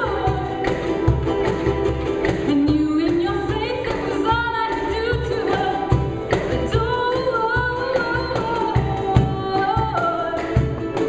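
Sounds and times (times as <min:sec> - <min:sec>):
percussion beat: 0:00.0 - 0:11.0
ukuleles: 0:00.0 - 0:11.0.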